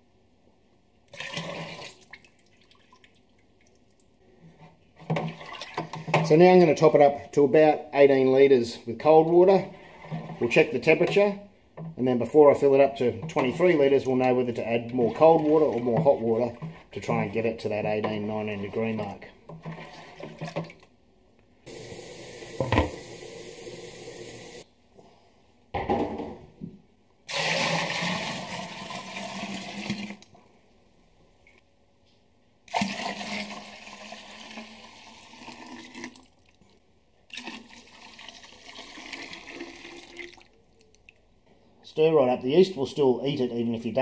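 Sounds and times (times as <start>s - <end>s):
water pouring into plastic container: 1.1s - 3.8s, 27.3s - 30.3s, 32.7s - 36.6s, 37.3s - 41.0s.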